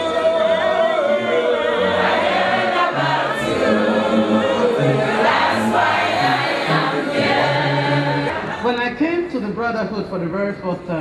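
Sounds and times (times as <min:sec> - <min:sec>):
congregation singing a hymn: 0:00.0 - 0:08.6.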